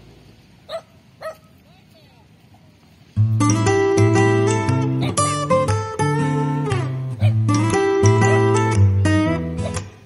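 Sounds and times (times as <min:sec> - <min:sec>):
dog yipping: 0:00.7 - 0:01.5, 0:05.0 - 0:05.3, 0:06.4 - 0:07.5, 0:09.6 - 0:09.9
dog whining: 0:06.4 - 0:07.5, 0:09.6 - 0:09.9.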